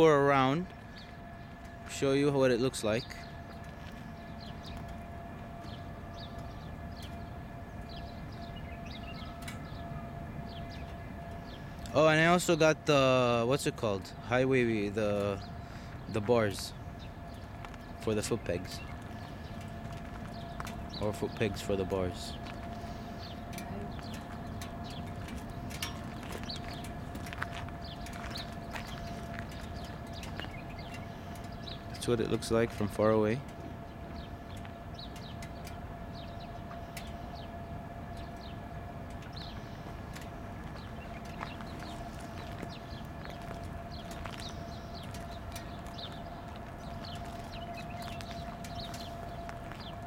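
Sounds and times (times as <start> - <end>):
faint constant whine: 0.0 - 50.0
faint steady hum: 0.0 - 50.0
low background rumble: 0.0 - 50.0
small birds chirping: 0.0 - 50.0
light footsteps on pavement: 0.6 - 12.5, 13.8 - 50.0.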